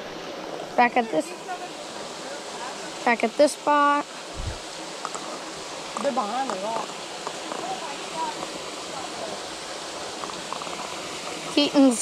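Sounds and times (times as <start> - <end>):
creek water flowing: 0.0 - 12.0.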